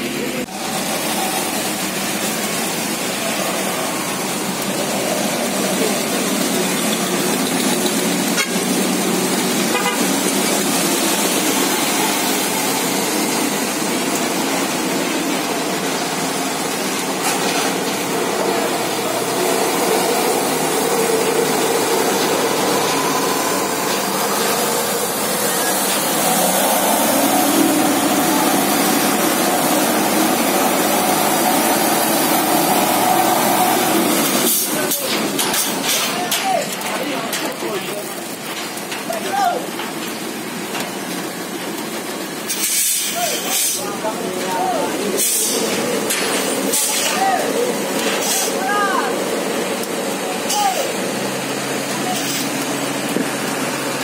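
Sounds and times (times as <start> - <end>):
heavy truck engine under load: 0.0 - 54.0
truck and car engines: 0.0 - 54.0
tyres hissing on wet road: 0.0 - 54.0
car horn toots: 9.7 - 10.2.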